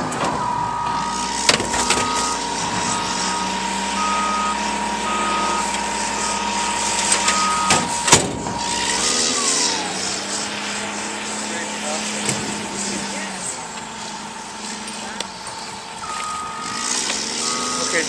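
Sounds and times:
reversing alarm beeping: 0:00.0 - 0:10.7, 0:13.9 - 0:18.0
sharp bangs: 0:00.0 - 0:11.0
bulldozer engine running: 0:00.0 - 0:18.0
steady whine dropping in pitch: 0:00.0 - 0:18.0.

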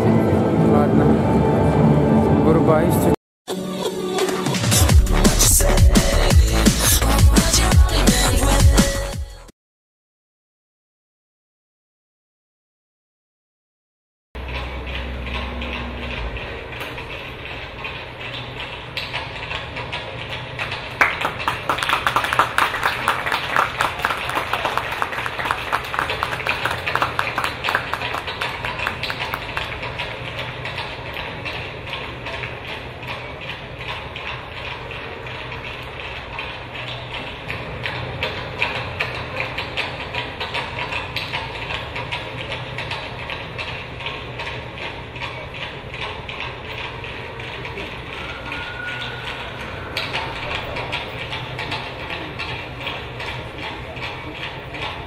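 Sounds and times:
audience clapping: 0:20.9 - 0:30.0.

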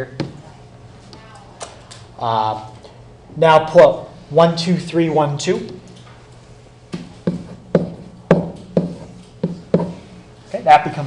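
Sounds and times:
pen knocking on whiteboard: 0:07.0 - 0:10.0.

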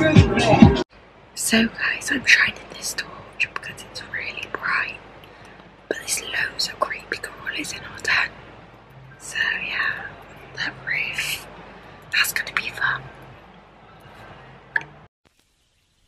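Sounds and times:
woman whispering: 0:01.4 - 0:05.0, 0:05.9 - 0:08.3, 0:09.2 - 0:11.5, 0:12.1 - 0:13.2.

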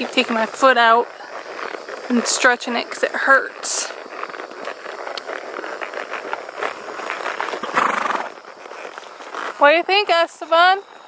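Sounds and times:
horse hooves clopping on pavement: 0:00.0 - 0:11.0.

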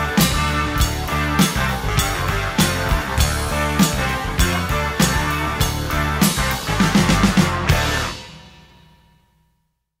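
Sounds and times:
rock band final chord ringing: 0:00.0 - 0:09.0.

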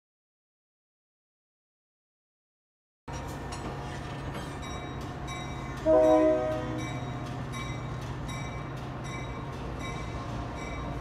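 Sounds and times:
light clicks of train: 0:03.1 - 0:11.0
train rumbling by: 0:03.1 - 0:11.0
train horn: 0:05.8 - 0:07.0.

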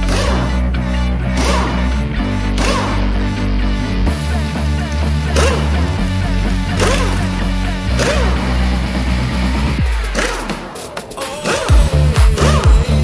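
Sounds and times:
sustained low chords: 0:00.0 - 0:10.6
percussive hits: 0:01.3 - 0:03.2.

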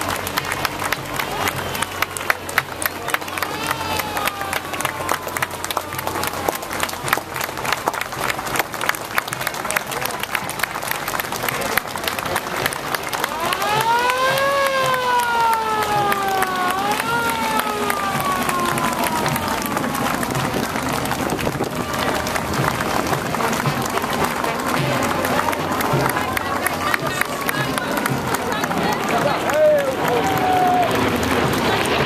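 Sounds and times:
crowd clapping and cheering: 0:00.0 - 0:32.0.

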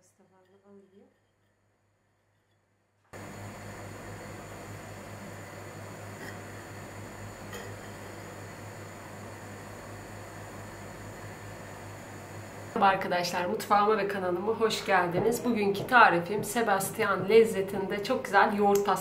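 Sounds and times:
even hiss over low hum: 0:03.1 - 0:19.0.

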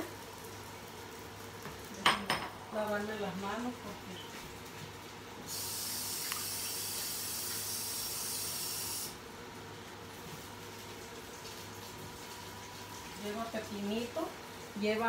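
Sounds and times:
tap water running: 0:00.0 - 0:15.0.

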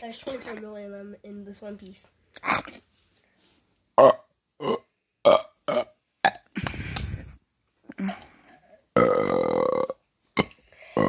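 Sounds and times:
person burping: 0:04.0 - 0:06.8, 0:07.9 - 0:11.0.

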